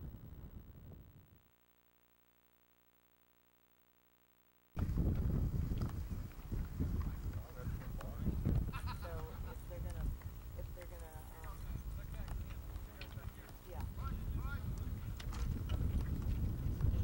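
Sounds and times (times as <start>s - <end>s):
hoof thuds: 4.8s - 17.0s
low outdoor rumble: 4.8s - 17.0s.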